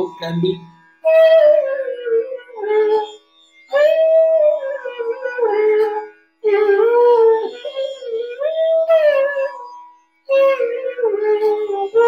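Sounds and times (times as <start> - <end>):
bamboo flute melody: 0.0 - 12.0.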